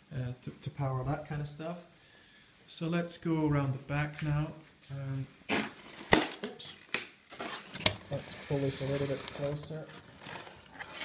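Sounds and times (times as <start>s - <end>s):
faint rubbing: 6.7s - 11.0s.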